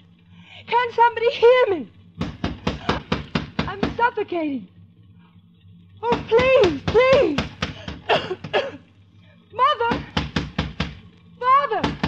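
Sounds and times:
pounding on garage door: 2.2s - 4.1s, 6.0s - 8.6s, 9.9s - 11.1s.

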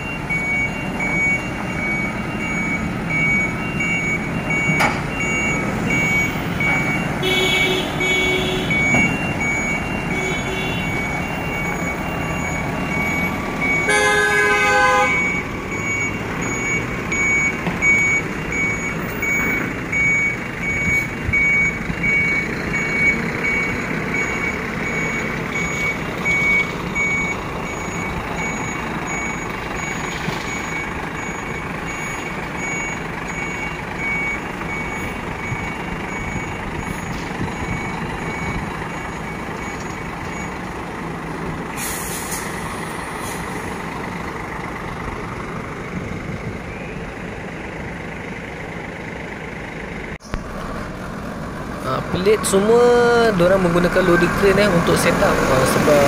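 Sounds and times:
reversing alarm beeps: 0.0s - 40.7s
diesel truck engine running: 0.0s - 56.0s
air brakes hissing: 41.7s - 43.8s.

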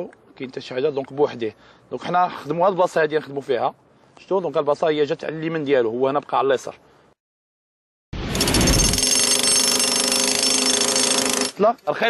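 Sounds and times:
jackhammer breaking concrete: 8.2s - 11.6s.

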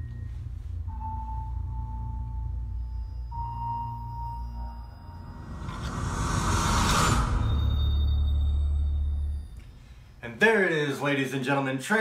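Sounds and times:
deep steady drone: 0.0s - 10.3s
thin high held tone: 0.0s - 10.4s
whoosh: 4.4s - 10.2s.

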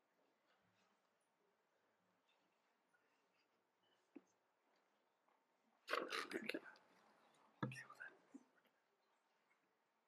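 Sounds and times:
person whispering: 7.6s - 8.4s.

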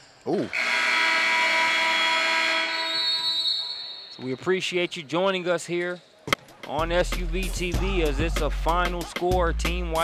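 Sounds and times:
scoreboard buzzer long blast: 0.6s - 3.0s.

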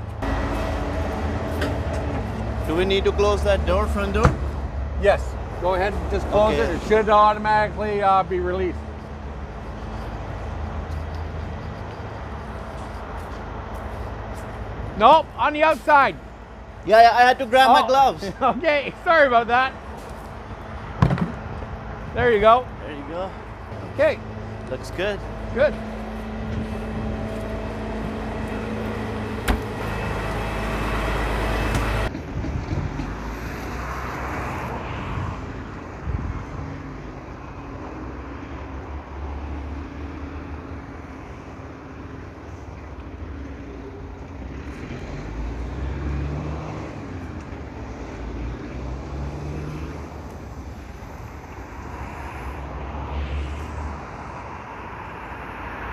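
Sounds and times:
distant road traffic: 0.0s - 55.9s.

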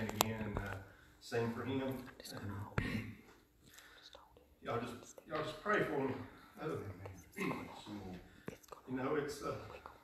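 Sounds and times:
man speaking softly: 0.0s - 3.3s, 4.5s - 10.0s.

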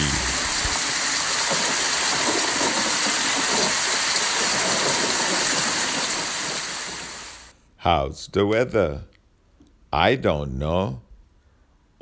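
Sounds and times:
steady rain: 0.0s - 7.5s.

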